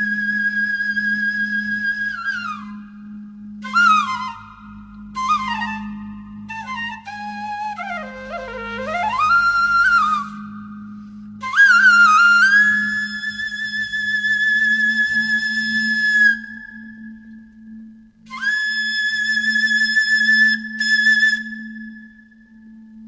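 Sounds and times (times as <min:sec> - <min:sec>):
bamboo flute long notes: 0:00.0 - 0:23.0
low drone: 0:01.4 - 0:13.7.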